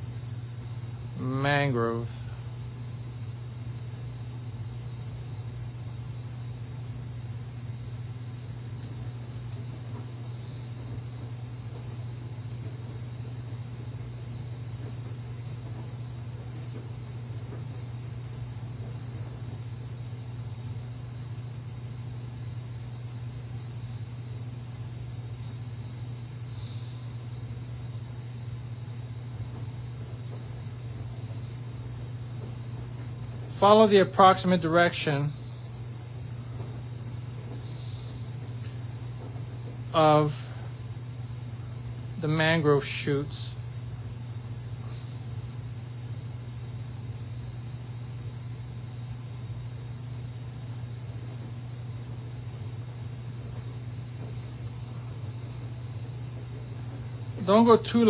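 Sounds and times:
faint hiss: 0.0s - 58.0s
steady low hum: 0.0s - 58.0s.

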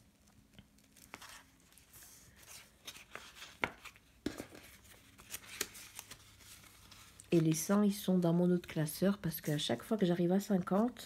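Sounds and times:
plastic sleeves and paper rustling: 0.0s - 11.0s.

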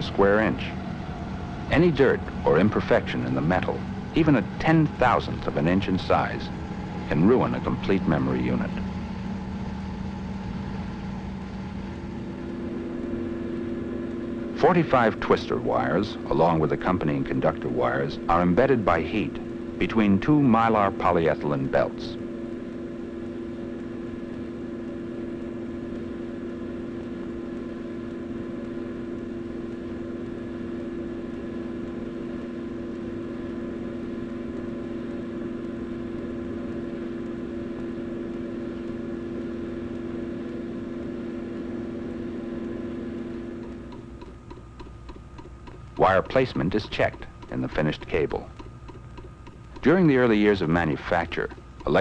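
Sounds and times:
steady machine hum: 0.0s - 52.0s
fast ticking: 43.4s - 52.0s.

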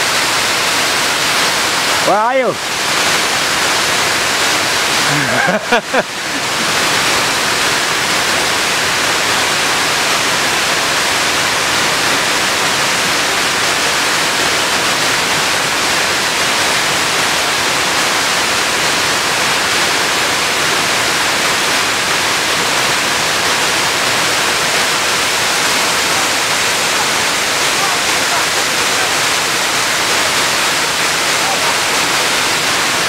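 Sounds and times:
waterfall rushing: 0.0s - 33.0s.

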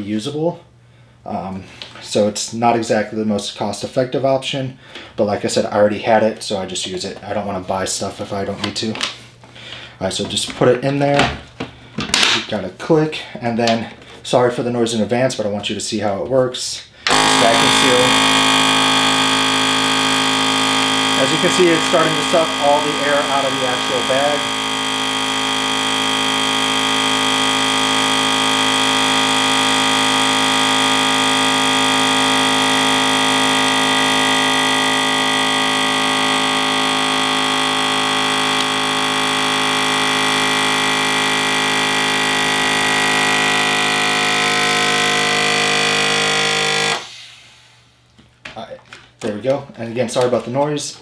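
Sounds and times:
vacuum sealer pump humming: 17.0s - 47.8s.

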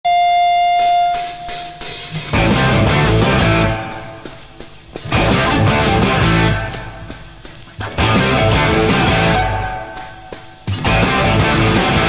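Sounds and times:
held high note: 0.1s - 2.3s, 7.8s - 10.7s
hi-hat count-in strokes: 0.8s - 12.0s.

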